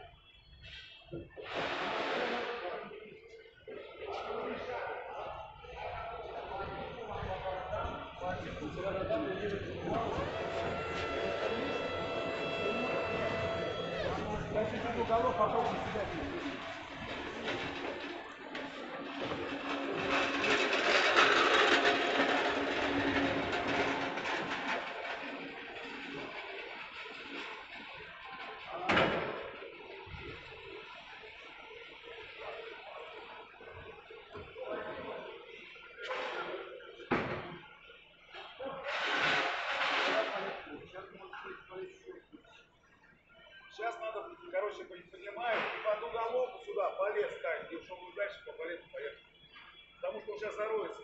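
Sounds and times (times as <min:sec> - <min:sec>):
hydraulic whine: 0:08.3 - 0:27.0.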